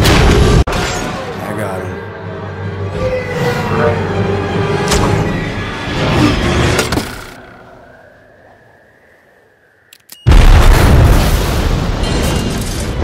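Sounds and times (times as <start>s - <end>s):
clicks: 9.8s - 10.3s
loud explosion with rumble: 10.3s - 13.0s.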